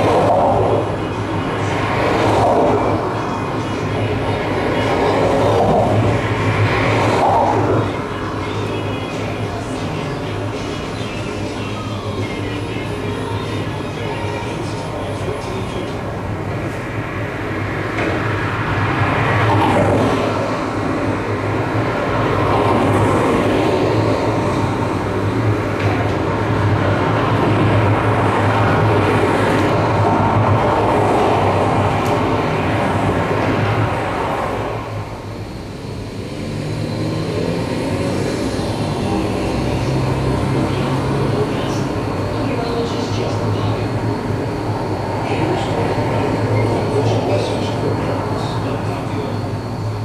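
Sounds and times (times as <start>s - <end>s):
dense wash of noise: 0.0s - 50.0s
steady low hum: 0.0s - 50.0s.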